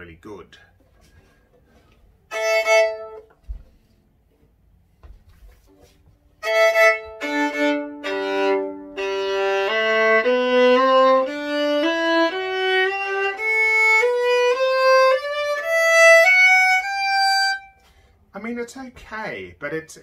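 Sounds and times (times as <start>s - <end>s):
violin bowed: 2.3s - 3.3s, 6.4s - 17.8s.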